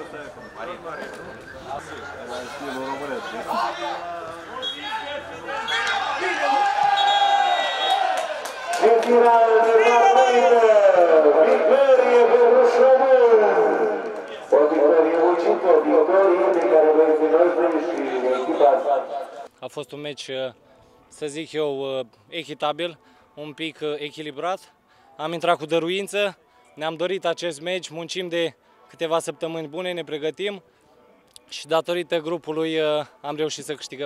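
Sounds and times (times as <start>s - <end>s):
people shouting and cheering: 3.0s - 19.5s.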